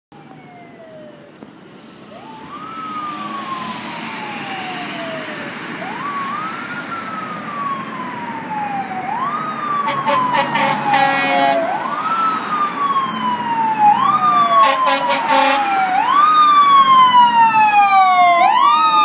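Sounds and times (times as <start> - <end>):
low drone of traffic: 0.1 - 19.0
fire engine siren wailing: 0.2 - 1.4, 2.0 - 19.0
rapid pulsing siren tones: 2.1 - 19.0.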